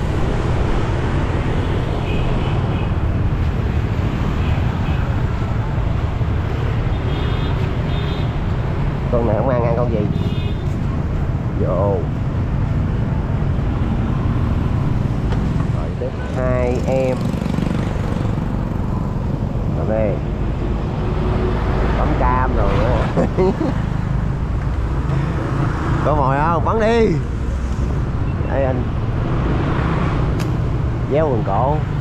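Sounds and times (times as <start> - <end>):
motorbike engines: 0.0 - 32.0
street traffic rumble: 0.0 - 32.0
voices: 9.1 - 10.4, 15.6 - 17.4.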